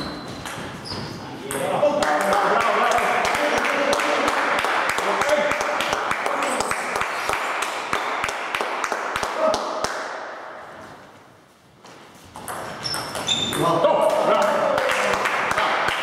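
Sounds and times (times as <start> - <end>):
voices echoing in hall: 0.0 - 11.6, 12.6 - 16.0.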